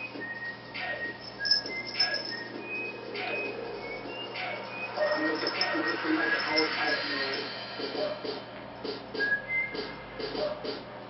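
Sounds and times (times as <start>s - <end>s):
whistled melody over a beat: 0.0s - 10.8s.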